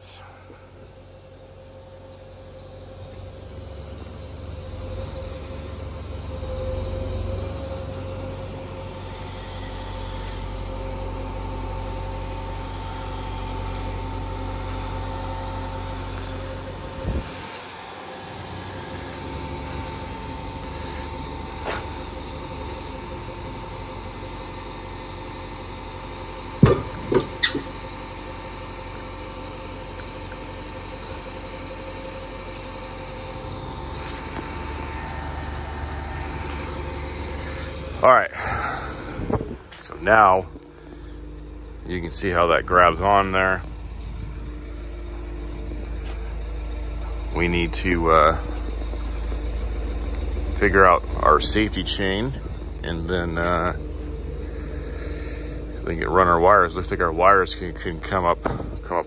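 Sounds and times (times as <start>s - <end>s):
diesel engine running: 0.0s - 59.0s
hydraulic whine: 0.0s - 59.0s
sharp metal knocks: 26.6s - 27.7s.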